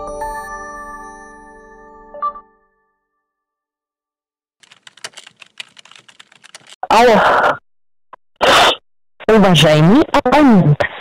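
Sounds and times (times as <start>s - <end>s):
keyboard key clicks: 4.6s - 6.8s.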